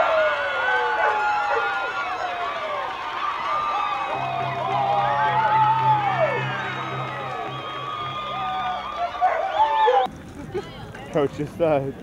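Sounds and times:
players shrieking and cheering: 0.0 - 10.1
background music: 4.0 - 10.1.

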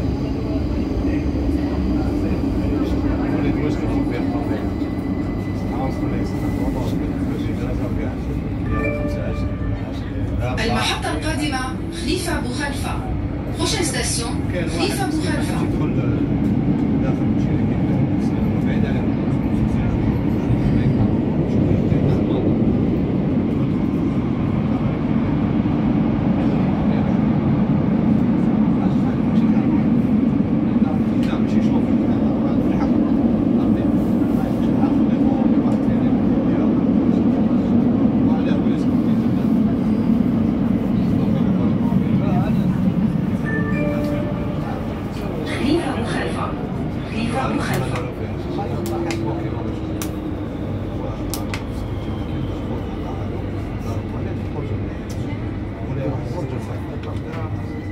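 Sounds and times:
train rumbling in tunnel: 0.0 - 57.9
train whining tones: 43.1 - 47.6.

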